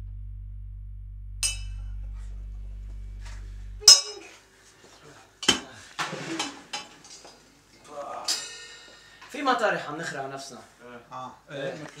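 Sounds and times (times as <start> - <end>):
metal clanks: 3.8 - 4.2, 8.3 - 9.3.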